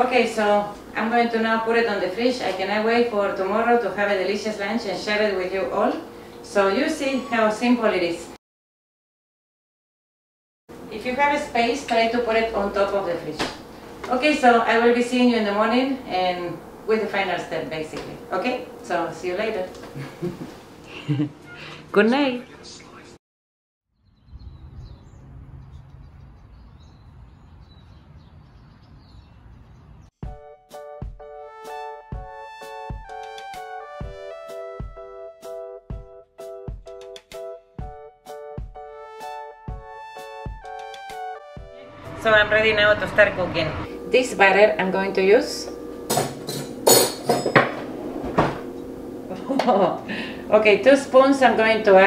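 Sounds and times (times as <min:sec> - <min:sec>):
bird chirps: 0:23.9 - 0:30.1
metal cutlery clattering: 0:46.1 - 0:47.6.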